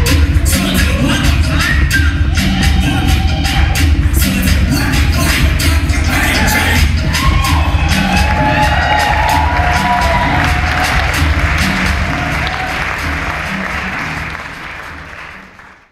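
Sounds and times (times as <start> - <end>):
afrobeat dance music with heavy bass: 0.0 - 15.6
audience applause and cheering: 0.0 - 15.9.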